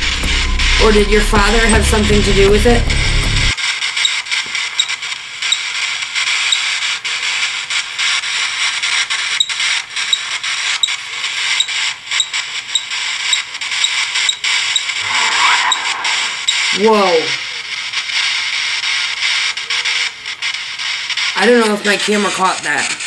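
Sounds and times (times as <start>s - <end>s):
radio static hiss: 0.0s - 23.0s
rapid irregular clicks and crackles: 3.2s - 15.0s, 17.6s - 23.0s.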